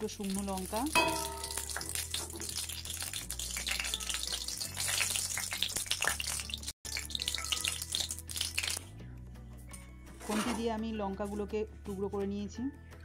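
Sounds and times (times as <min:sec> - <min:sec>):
chillies sizzling in hot oil: 0:00.0 - 0:08.8.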